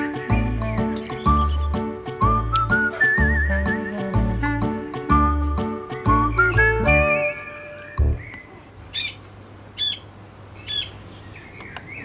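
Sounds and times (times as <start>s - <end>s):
faint bird chirps: 9.8s - 12.0s.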